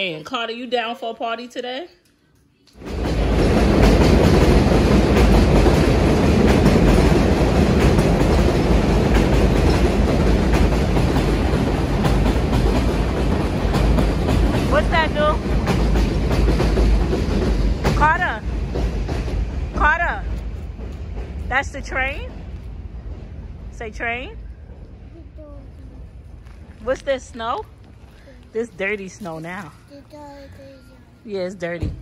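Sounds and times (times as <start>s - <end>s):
train rumbling past: 2.8s - 30.1s.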